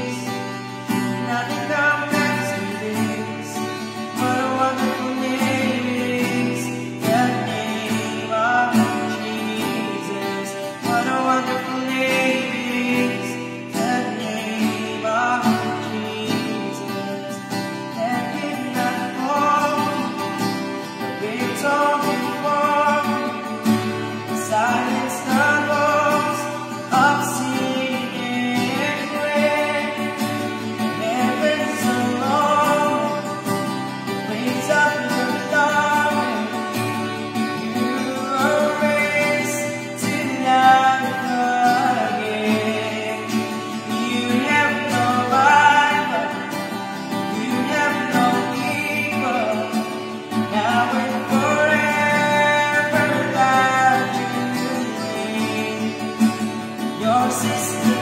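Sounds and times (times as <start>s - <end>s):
man singing: 0.0s - 58.0s
strummed acoustic guitar: 0.0s - 58.0s.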